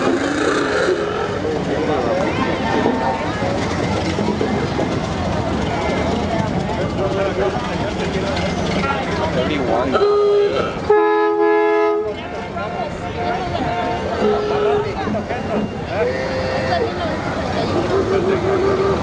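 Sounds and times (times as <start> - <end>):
crowd chatter: 0.0 - 19.0
vehicle horn honking: 9.9 - 12.2, 13.0 - 15.0.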